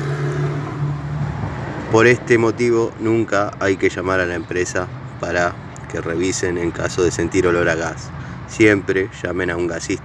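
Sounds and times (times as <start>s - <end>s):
low engine hum: 0.0s - 2.4s.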